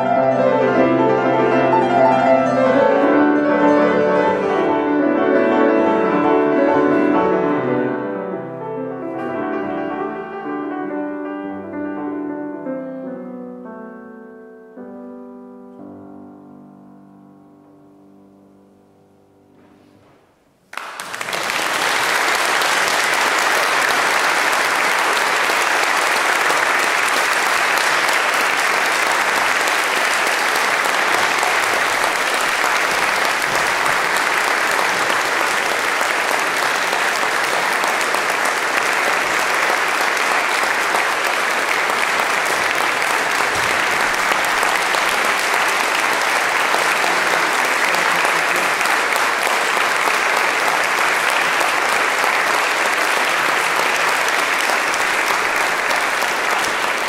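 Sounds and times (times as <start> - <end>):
audience applauding: 20.7 - 57.0.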